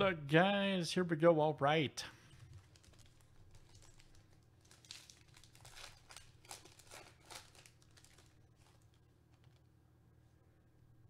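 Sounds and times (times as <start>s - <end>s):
foil wrapper crinkling and tearing: 2.4s - 9.5s.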